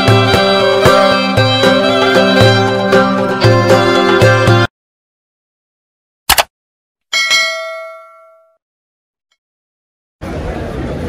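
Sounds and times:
bell chime ding: 7.1s - 8.6s.

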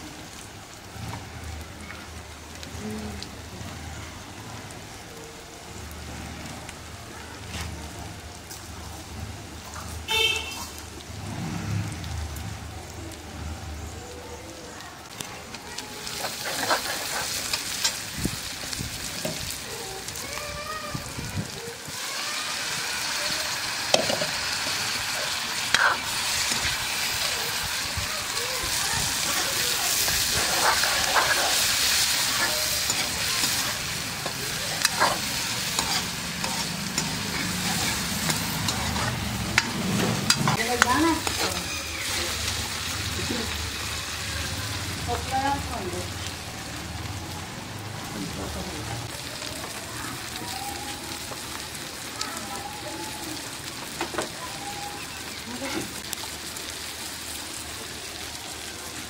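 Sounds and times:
vegetables sizzling in oil: 0.0s - 59.0s
metal ladle scraping a pan: 16.0s - 18.0s, 22.9s - 42.5s.

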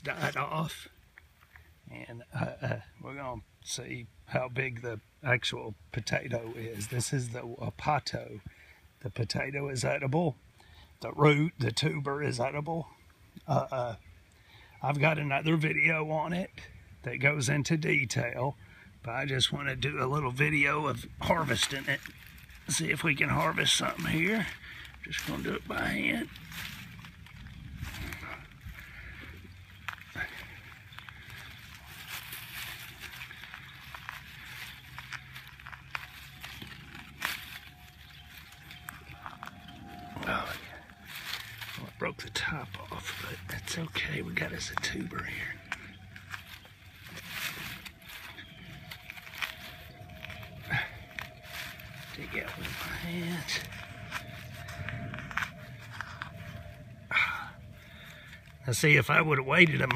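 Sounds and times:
hand digging through soil and grass: 20.2s - 59.9s
stems snapping: 26.3s - 56.8s.

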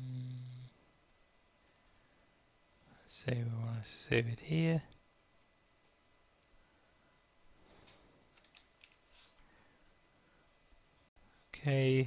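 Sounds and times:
typing on computer keyboard: 1.6s - 2.1s, 8.4s - 9.0s.

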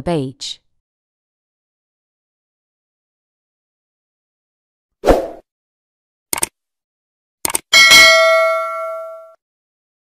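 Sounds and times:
quick double click: 6.3s - 6.5s, 7.4s - 7.7s
bright bell ding: 7.8s - 9.4s.

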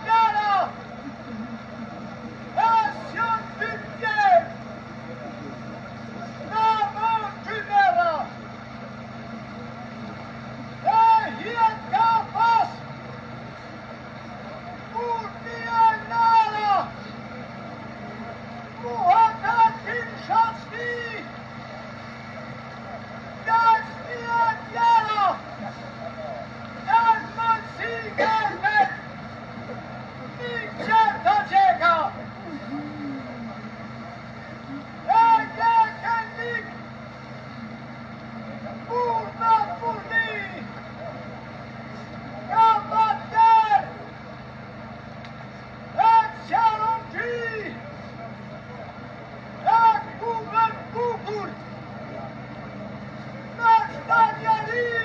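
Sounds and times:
steady low hum: 0.0s - 55.0s
man wailing lament: 10.8s - 12.8s.

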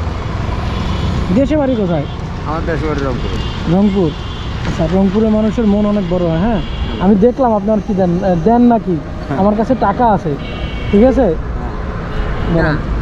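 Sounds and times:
road traffic rumble: 0.0s - 13.0s
men talking: 2.4s - 3.6s, 9.0s - 10.1s.

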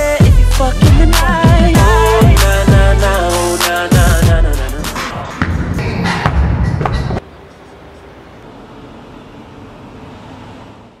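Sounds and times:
hip-hop music with heavy beat: 0.0s - 7.2s.

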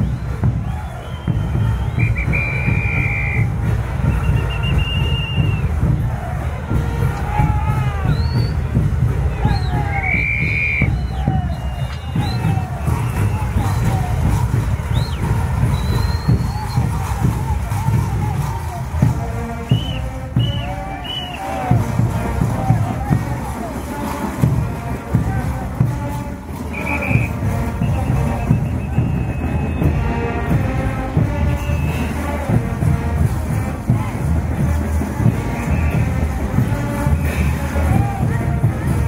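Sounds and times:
short whistle calls: 0.0s - 5.7s, 7.9s - 8.7s, 9.3s - 17.9s, 19.5s - 21.7s, 26.6s - 30.0s, 31.6s - 32.3s, 35.5s - 36.2s
crowd voices: 0.0s - 39.0s.

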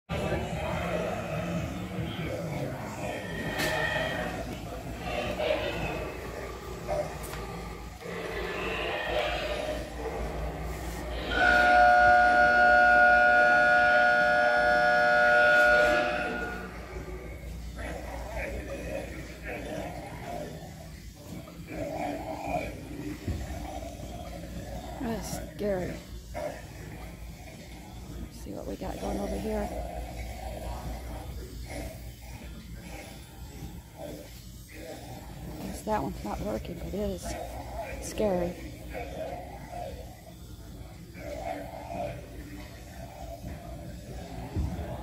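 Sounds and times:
zombie prop groans: 0.1s - 11.8s, 15.7s - 45.0s
loud steady wail: 9.1s - 18.8s.

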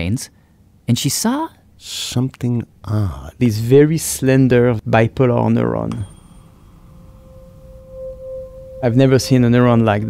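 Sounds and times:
steady pure tone: 1.6s - 10.0s.

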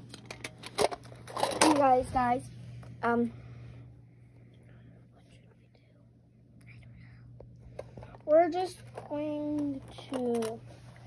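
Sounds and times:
low steady hum: 0.0s - 11.0s
plastic toy figures clicking: 9.0s - 10.6s.

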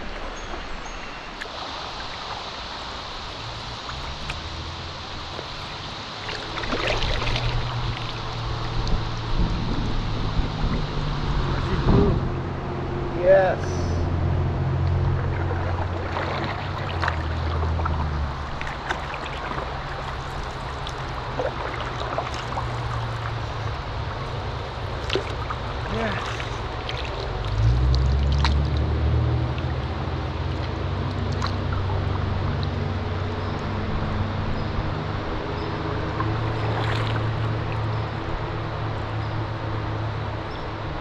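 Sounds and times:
paddle strokes in water: 0.0s - 11.7s, 14.9s - 40.4s
water trickling: 0.0s - 11.8s, 12.4s - 41.0s.

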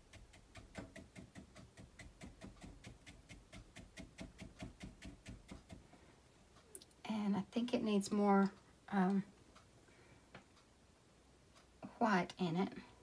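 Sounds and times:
brush tapping paint on canvas: 0.0s - 6.0s.

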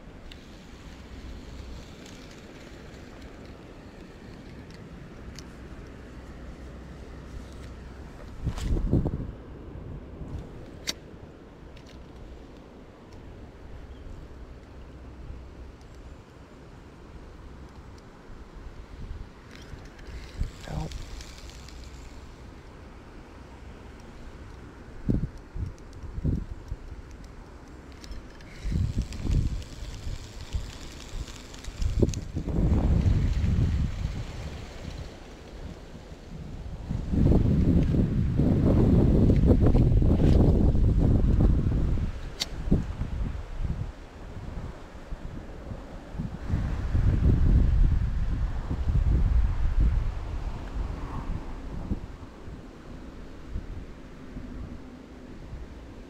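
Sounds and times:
wind buffeting microphone: 0.0s - 10.9s, 18.3s - 55.9s.

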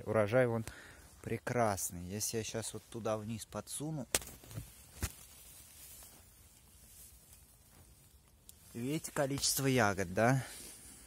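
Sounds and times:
rustling among leaves: 2.4s - 11.0s.

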